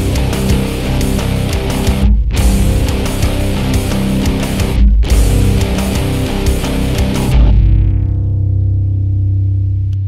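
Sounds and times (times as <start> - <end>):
sustained low drone: 0.0 - 10.0.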